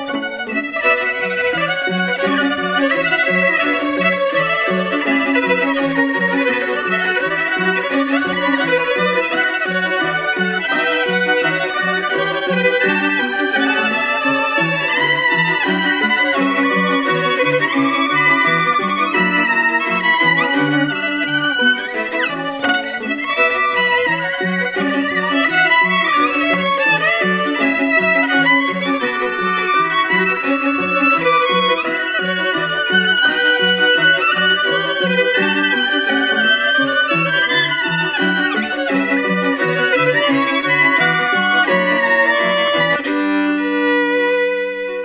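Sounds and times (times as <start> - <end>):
violin wavering melody: 0.0 - 45.0.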